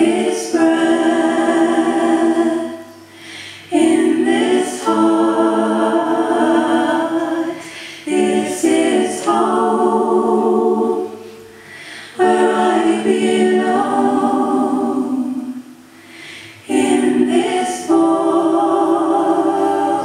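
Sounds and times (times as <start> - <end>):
woman breathing: 3.0 - 3.7, 11.4 - 12.2, 15.8 - 16.6.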